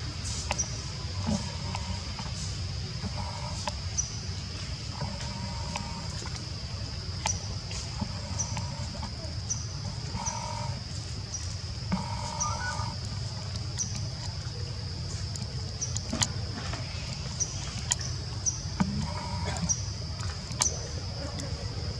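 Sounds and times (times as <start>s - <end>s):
high-pitched insect buzz: 9.5s - 13.0s
short bird calls: 11.9s - 13.0s.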